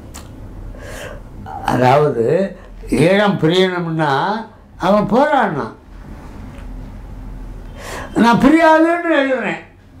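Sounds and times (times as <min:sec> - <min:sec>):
person talking: 0:01.4 - 0:05.8, 0:08.2 - 0:09.8.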